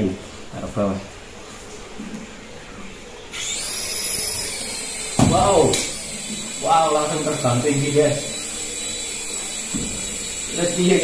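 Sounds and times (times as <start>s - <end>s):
toy helicopter motor whine: 3.3s - 11.0s.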